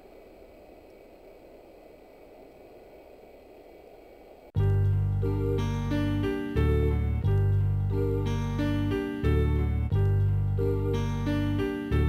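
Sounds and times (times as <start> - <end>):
faint low background noise: 0.0 - 12.0.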